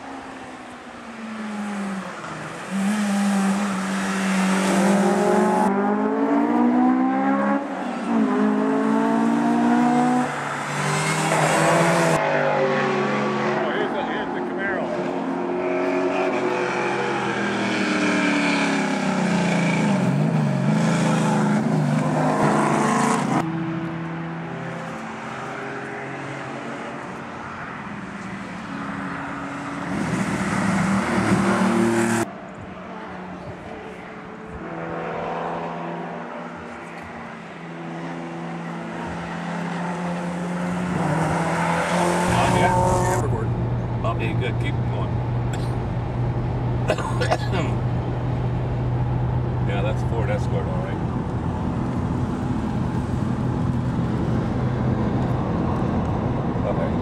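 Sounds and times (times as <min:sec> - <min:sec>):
rally cars revving past: 0:01.4 - 0:32.3, 0:34.6 - 0:43.4.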